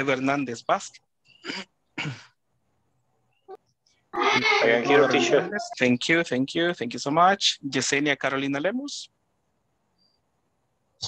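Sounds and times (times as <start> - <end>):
person coughing: 1.4 - 2.3.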